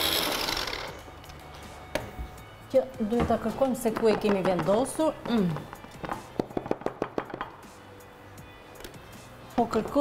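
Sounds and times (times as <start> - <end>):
food processor motor running: 0.0 - 0.9.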